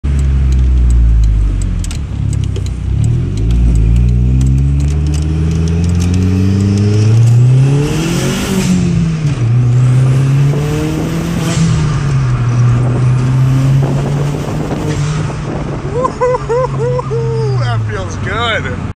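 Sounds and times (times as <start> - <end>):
car engine accelerating: 0.1 - 18.9.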